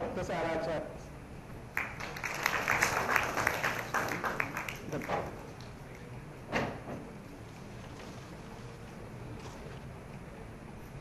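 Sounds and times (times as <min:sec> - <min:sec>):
audience applauding: 0:01.7 - 0:06.1.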